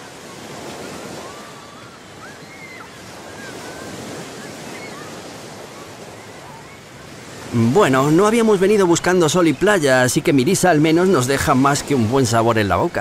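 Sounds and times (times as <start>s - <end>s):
ocean surf breaking on beach: 0.0s - 13.0s.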